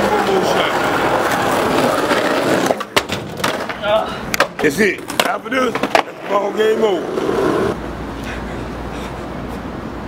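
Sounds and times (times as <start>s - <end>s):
skateboard wheels rolling on asphalt: 0.0s - 7.8s.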